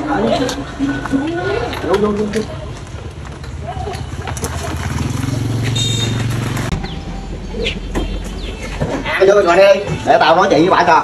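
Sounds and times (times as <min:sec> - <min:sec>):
motorbike engine running: 0:03.7 - 0:07.4.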